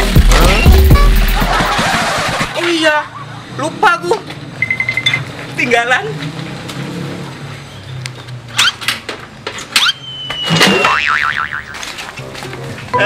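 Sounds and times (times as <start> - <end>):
rising whistle chirps: 9.8 - 10.9
falling slide whistle: 9.8 - 11.0
wobbling boing: 10.7 - 11.8.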